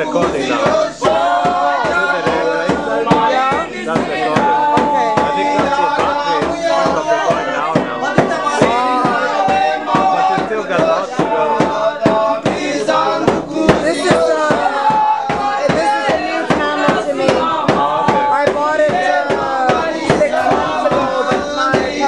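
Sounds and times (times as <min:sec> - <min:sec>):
frame drum beat: 0:00.0 - 0:22.0
men singing and chanting: 0:00.0 - 0:22.0.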